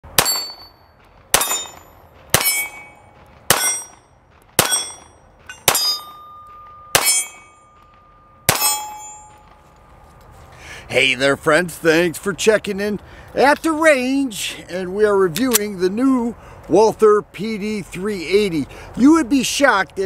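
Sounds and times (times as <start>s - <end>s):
pistol shots: 0.1s - 0.7s, 1.3s - 4.0s, 4.6s - 7.6s, 8.4s - 9.2s
steel target clanging: 0.1s - 9.6s.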